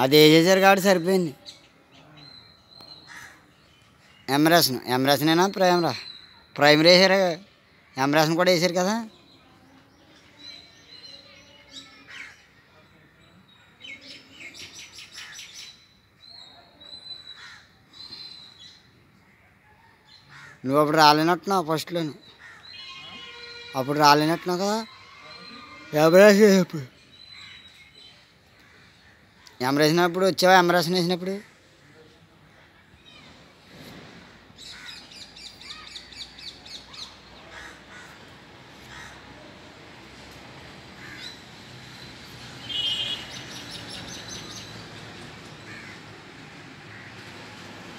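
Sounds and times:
birds chirping: 0.0 - 19.4, 20.1 - 33.8, 34.5 - 47.4.

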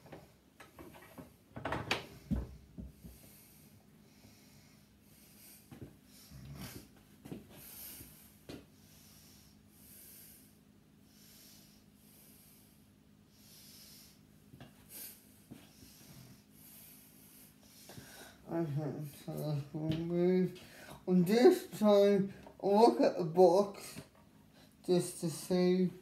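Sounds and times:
low steady hum: 0.0 - 26.0
person breathing: 2.1 - 6.9, 7.5 - 19.2, 20.5 - 21.1.

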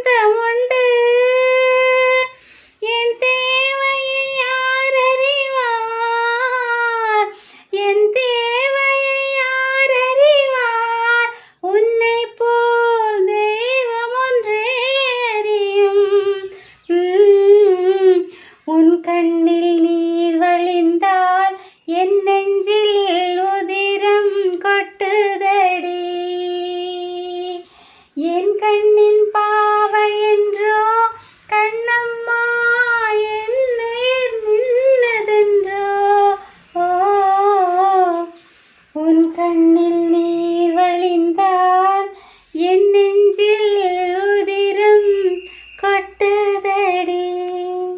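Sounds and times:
woman singing unaccompanied: 0.0 - 47.9.

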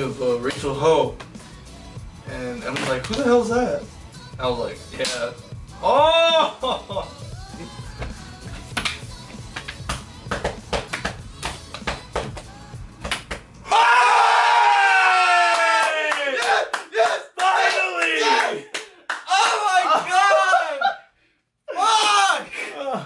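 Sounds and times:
background music with clicks: 2.6 - 3.3, 4.9 - 5.3, 8.0 - 13.6
excited shouting: 5.8 - 7.1, 13.6 - 21.1, 21.7 - 23.0
man yelling: 5.8 - 7.1, 13.7 - 21.0, 21.7 - 23.0.

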